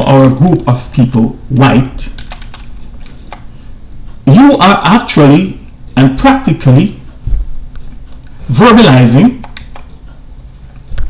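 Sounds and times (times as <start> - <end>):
low steady hum: 0.0 - 11.0
keyboard keys clicking: 2.1 - 3.5, 9.4 - 9.9.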